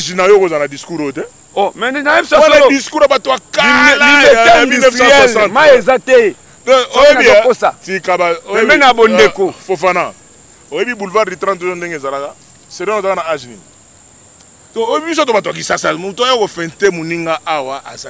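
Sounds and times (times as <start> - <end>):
man talking: 0.0 - 13.6, 14.7 - 18.0
crickets chirping: 0.0 - 18.0.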